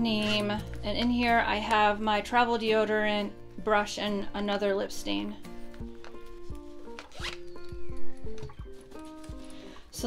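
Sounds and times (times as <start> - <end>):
background music: 0.0 - 10.0
zipper on fabric pouch: 6.2 - 7.6.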